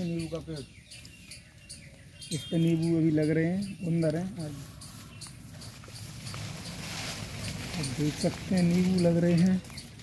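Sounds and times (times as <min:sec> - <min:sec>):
faint high chirping: 0:00.0 - 0:06.8
leaves and twigs rustling: 0:00.0 - 0:10.0.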